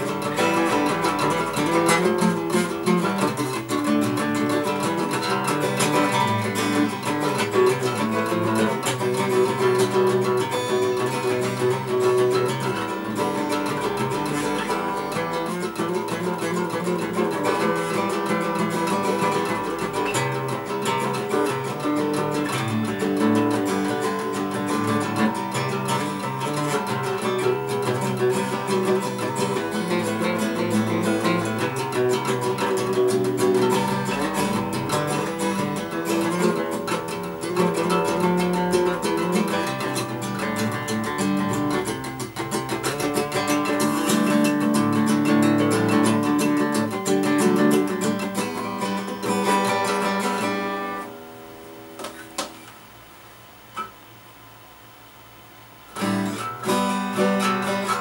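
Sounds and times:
acoustic guitar plucked and strummed: 0:00.0 - 0:54.7, 0:55.7 - 0:58.0.

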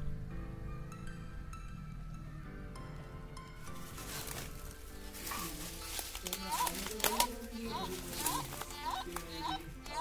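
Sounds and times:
dry leaves and twigs crackling: 0:03.6 - 0:10.0.

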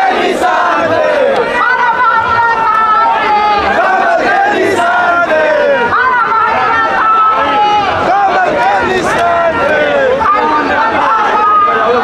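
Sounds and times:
large crowd shouting: 0:00.0 - 0:12.0.

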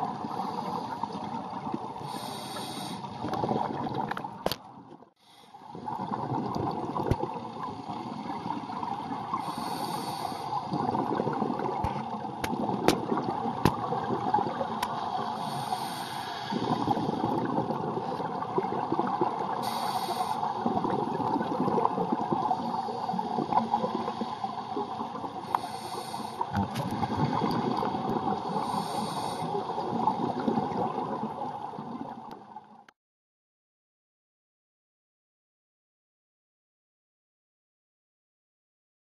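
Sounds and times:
diver inhaling through regulator: 0:02.0 - 0:03.2, 0:09.4 - 0:10.8, 0:15.3 - 0:17.3, 0:19.6 - 0:20.6, 0:25.4 - 0:27.6, 0:28.4 - 0:29.7
exhale bubbling: 0:05.7 - 0:32.2.

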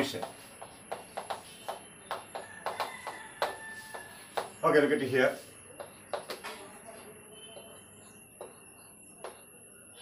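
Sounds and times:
chalk tapping and scraping: 0:00.0 - 0:06.6.

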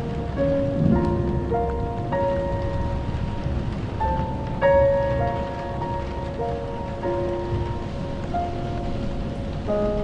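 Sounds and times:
slow piano melody: 0:00.0 - 0:10.0
steady rain falling: 0:00.0 - 0:10.0.

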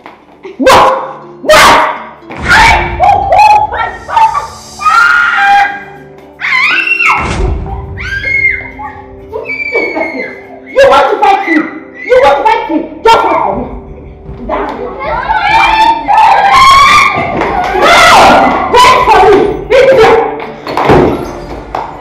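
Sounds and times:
background music with held tones: 0:00.0 - 0:22.0
children screaming and wailing: 0:02.4 - 0:12.5, 0:15.0 - 0:20.0.

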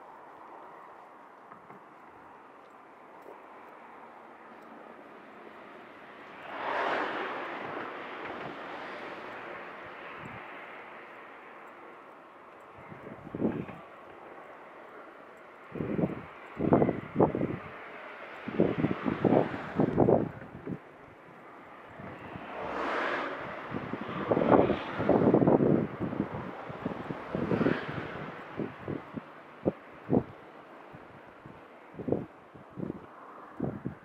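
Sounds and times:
cars passing: 0:00.0 - 0:34.0
wind buffeting microphone: 0:03.1 - 0:34.0.

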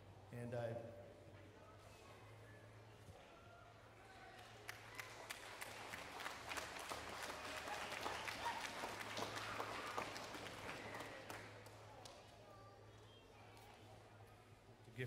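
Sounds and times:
audience applauding: 0:04.3 - 0:12.1.

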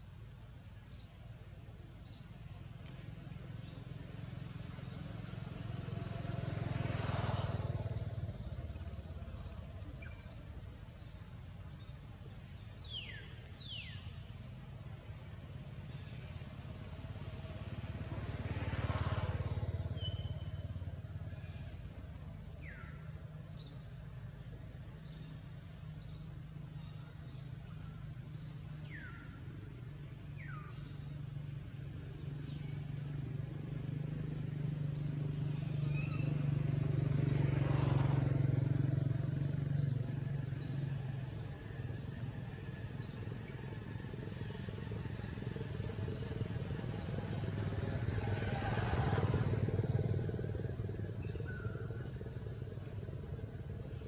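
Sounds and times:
low engine hum: 0:00.0 - 0:54.0
motor vehicles passing: 0:00.1 - 0:54.0.

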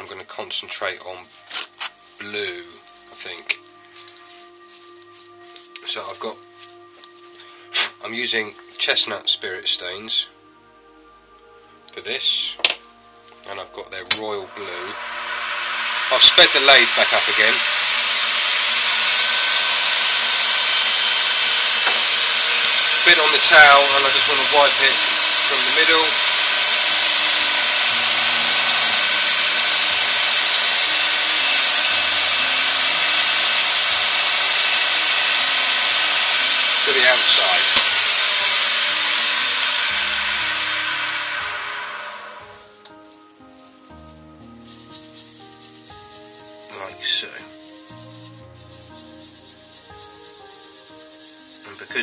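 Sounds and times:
soft background music: 0:00.0 - 0:17.7, 0:23.0 - 0:26.3, 0:36.8 - 0:37.7, 0:39.9 - 0:52.0
cloth rubbing spinning wooden bowl: 0:44.5 - 0:52.0.

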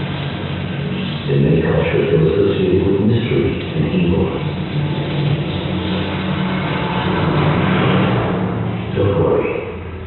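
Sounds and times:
low soundtrack drone over loudspeakers: 0:00.0 - 0:10.0.

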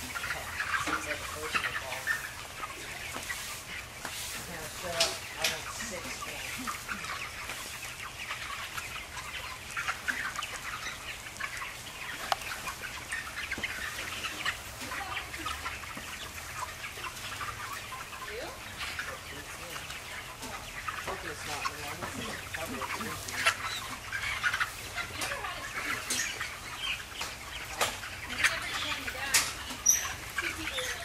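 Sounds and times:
chickens chirping and clucking: 0:00.0 - 0:31.0.

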